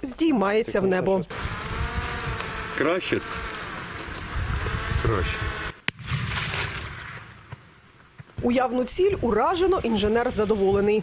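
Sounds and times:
distant explosion with rumble: 5.9 - 7.8.

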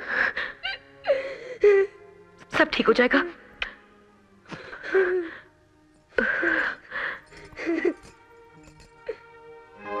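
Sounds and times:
person crying and sobbing: 0.0 - 2.1, 4.6 - 8.2.

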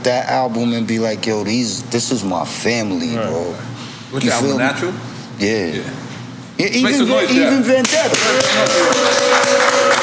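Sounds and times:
hand claps: 7.8 - 10.0.

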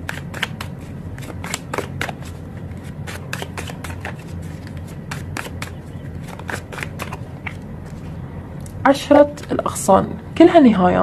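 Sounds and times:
cards being shuffled: 0.0 - 8.1
steady low hum: 0.0 - 11.0.

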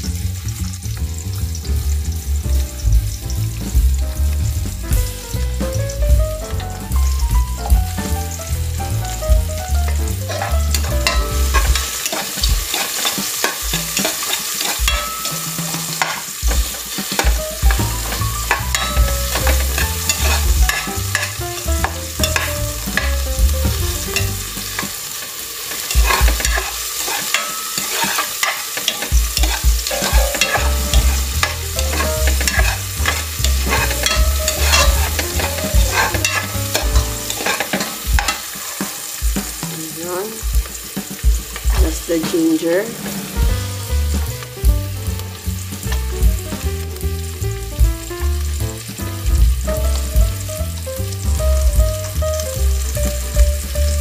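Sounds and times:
onion sizzling in hot oil: 0.0 - 54.0
low thumps: 2.4 - 12.7, 16.4 - 24.8, 29.1 - 37.4
metal spoon scraping pot: 10.3 - 16.3, 18.5 - 21.3, 25.9 - 38.4.

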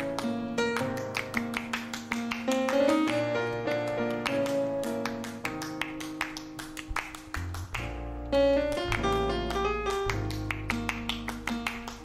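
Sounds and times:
jazz piano run: 0.0 - 12.0.

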